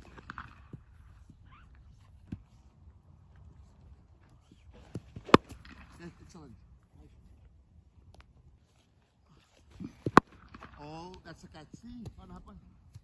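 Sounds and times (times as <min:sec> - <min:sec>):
cricket bat striking ball: 0:05.0 - 0:06.0.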